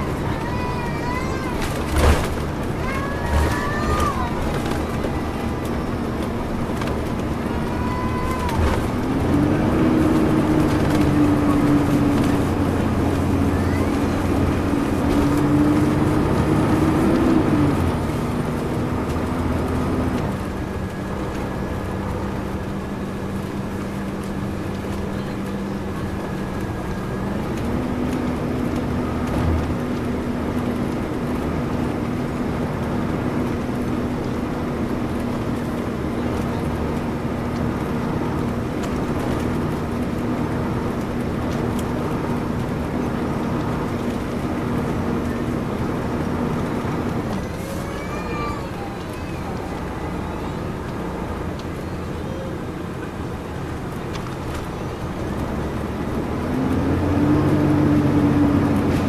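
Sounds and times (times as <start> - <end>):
bus engine running: 0.0 - 59.0
tyre and road noise: 0.0 - 59.0.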